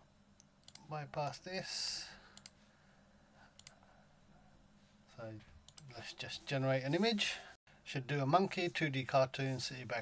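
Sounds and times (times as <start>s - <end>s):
computer mouse clicking: 0.4s - 0.8s, 2.4s - 2.6s, 3.6s - 3.8s, 5.7s - 5.9s.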